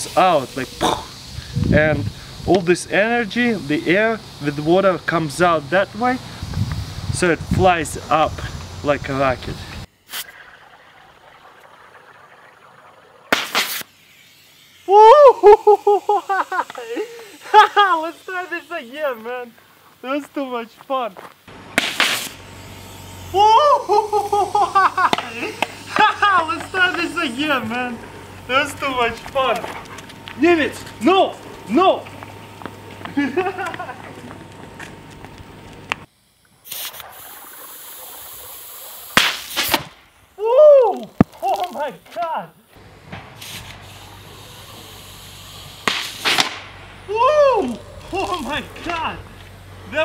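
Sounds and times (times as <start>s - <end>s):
hissing burst of air and water: 0.0s - 5.4s, 6.1s - 20.0s, 23.8s - 28.3s, 36.1s - 40.4s, 43.2s - 46.7s
cork blowing out: 10.0s - 14.6s, 36.6s - 39.9s
cork popping out of bottle: 10.1s - 13.9s.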